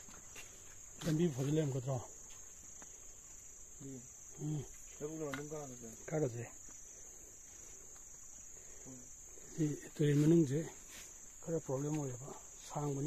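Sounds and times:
insects droning: 0.0s - 13.0s
man murmuring: 3.8s - 4.8s.

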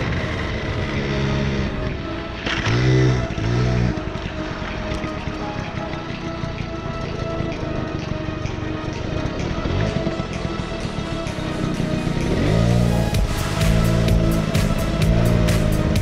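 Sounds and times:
background music: 0.0s - 16.0s
moped engine running: 0.0s - 16.0s.

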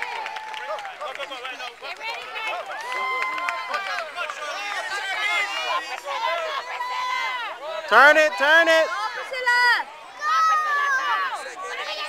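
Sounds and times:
children calling and shouting: 1.8s - 12.0s.

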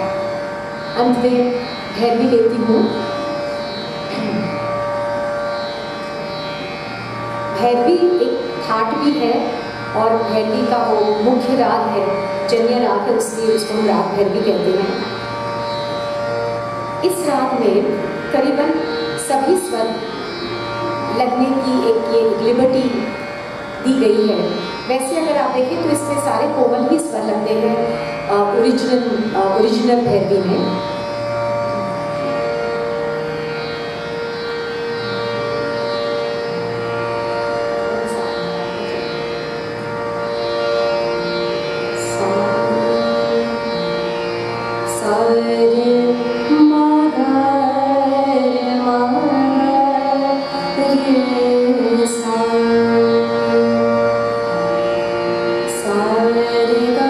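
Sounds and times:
harmonium holding notes: 0.0s - 57.0s.

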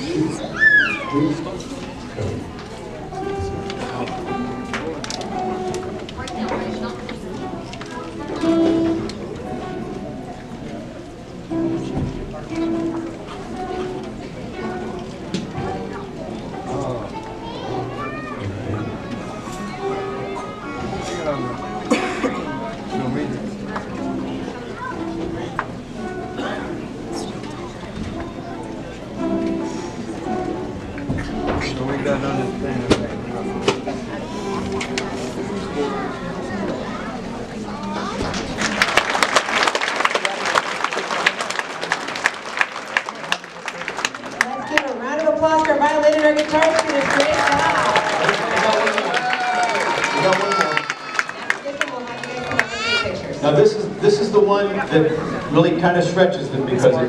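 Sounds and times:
children chattering: 0.0s - 57.0s
voices in crowd: 0.0s - 57.0s
audience applauding: 38.3s - 53.2s.

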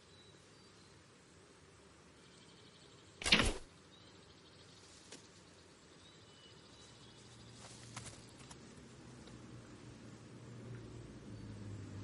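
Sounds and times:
insects at night: 0.0s - 12.0s.

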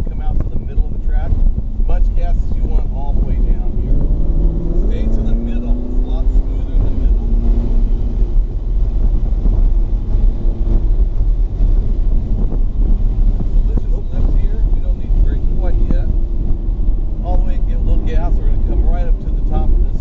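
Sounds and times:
car engine accelerating: 0.0s - 20.0s
road and wind noise: 0.0s - 20.0s.

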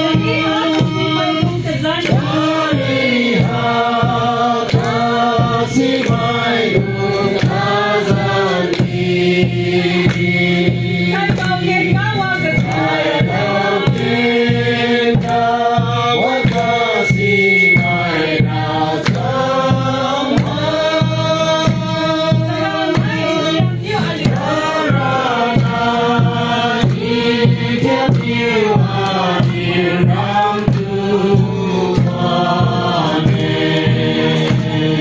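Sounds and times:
group singing: 0.0s - 35.0s
hands clapping in time: 0.0s - 35.0s
steady beat: 0.0s - 35.0s.

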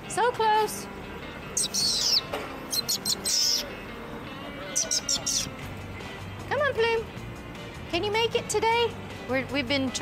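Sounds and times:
bird chirping: 1.5s - 3.8s, 4.7s - 5.6s.

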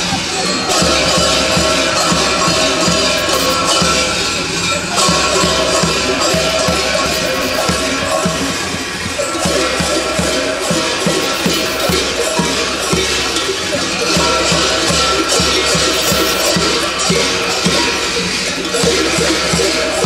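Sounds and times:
large metal bells clanging: 0.0s - 20.0s
steady low beat: 9.4s - 13.6s.

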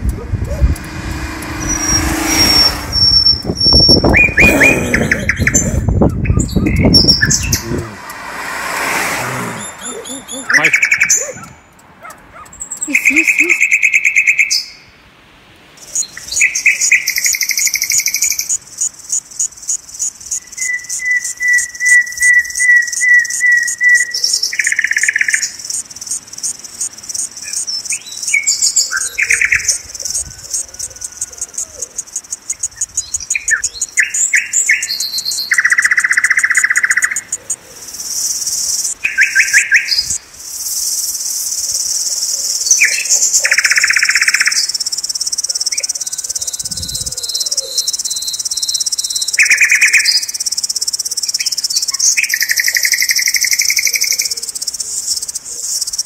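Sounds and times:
birds chirping: 0.0s - 15.0s, 15.8s - 56.0s
pulsing insect buzz: 0.4s - 4.2s.

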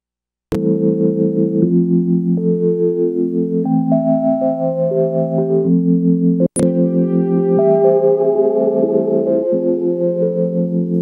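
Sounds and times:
electronic keyboard chords: 0.6s - 11.0s.

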